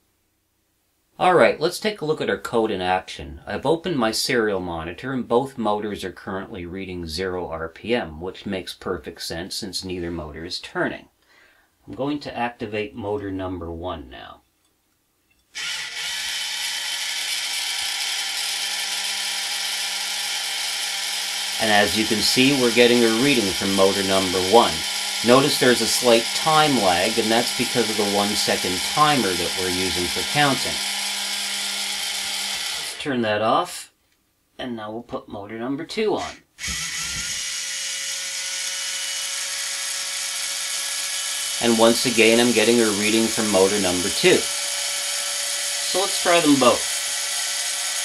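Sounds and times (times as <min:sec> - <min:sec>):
small motor whirring: 0:15.6 - 0:33.0, 0:36.2 - 0:48.0.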